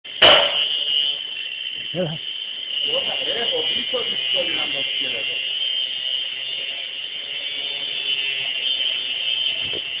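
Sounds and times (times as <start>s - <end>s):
angle grinder grinding metal: 0.1s - 10.0s.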